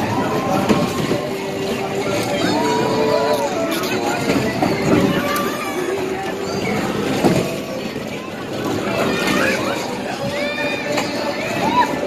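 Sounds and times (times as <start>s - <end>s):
ride vehicles rumbling on concrete: 0.0s - 12.0s.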